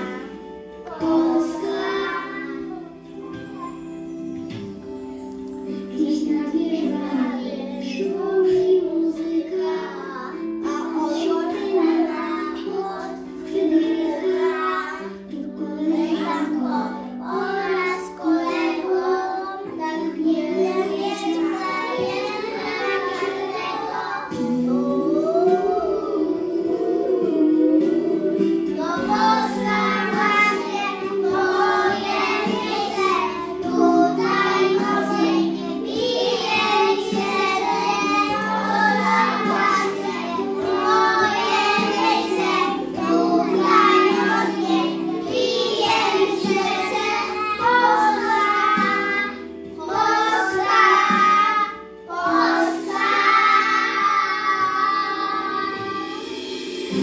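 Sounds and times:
children singing together: 0.0s - 57.0s
instrumental accompaniment: 0.0s - 57.0s.

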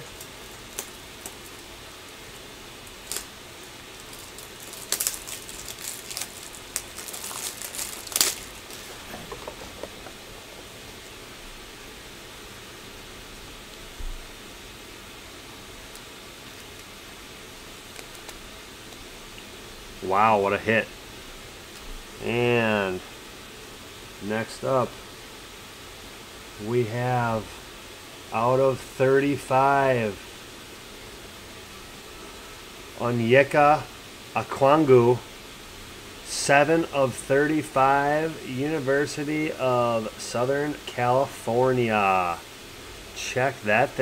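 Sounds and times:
background hiss: 0.0s - 44.0s
plastic clicks and crinkles: 4.0s - 10.7s, 17.9s - 19.0s.

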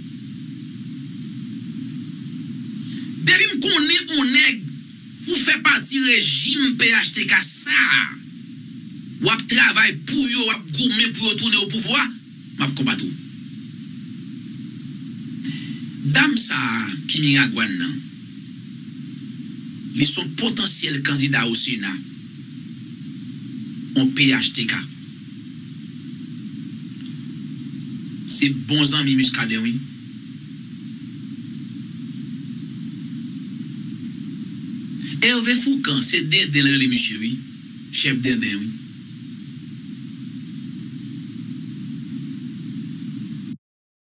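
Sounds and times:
background hiss and low rumble: 0.0s - 43.6s
low hum: 0.0s - 43.6s.

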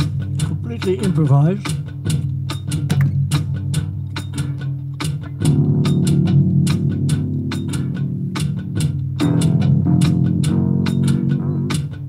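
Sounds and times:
electric guitar playing blues: 0.0s - 12.0s
steady percussion beat: 0.0s - 12.0s
low bass part: 5.4s - 12.0s.

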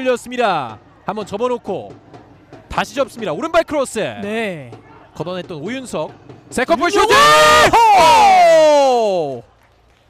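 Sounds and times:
man shouting excitedly: 6.6s - 9.3s.

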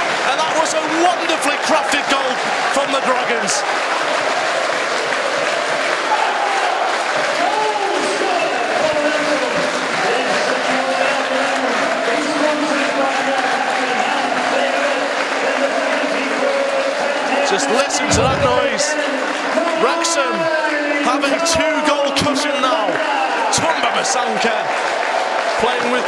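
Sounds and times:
football crowd cheering: 0.0s - 26.0s
crowd chanting: 13.4s - 19.6s.

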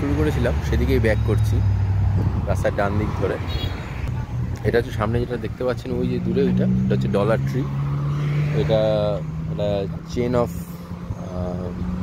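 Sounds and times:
voices: 0.0s - 1.8s, 2.4s - 12.0s
vehicle engine humming: 0.0s - 12.0s.

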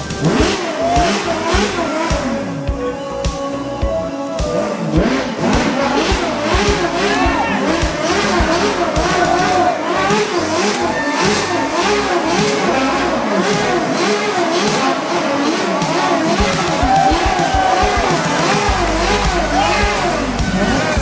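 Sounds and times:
car engines running: 0.0s - 21.0s
crowd voices: 0.0s - 21.0s.

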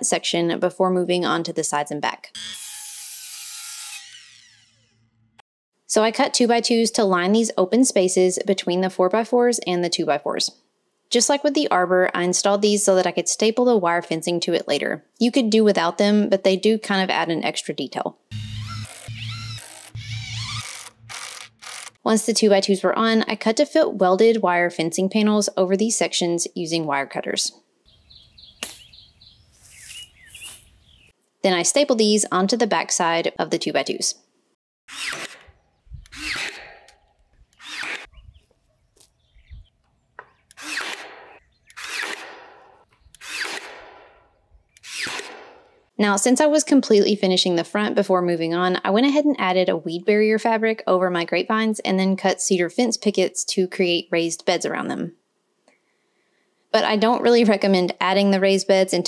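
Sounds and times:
miter saw winding down: 2.4s - 5.3s, 18.3s - 22.0s
small birds chirping: 27.9s - 31.2s, 37.4s - 40.6s, 41.3s - 41.9s, 42.9s - 43.2s.

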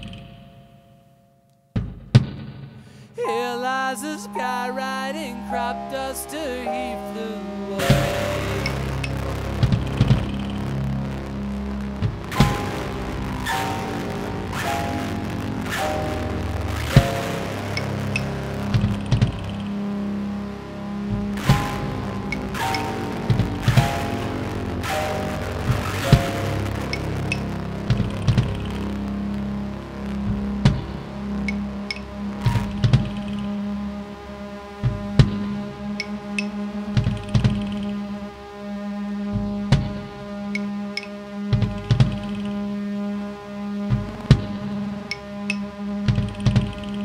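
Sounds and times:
percussive hits: 1.7s - 3.0s, 11.9s - 15.8s, 21.1s - 28.8s
steady low drone: 2.6s - 47.0s
descending melodic figure: 3.1s - 41.0s.

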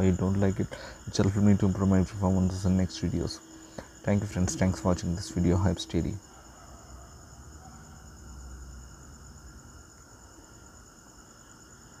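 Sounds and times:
low hum: 4.0s - 6.2s.

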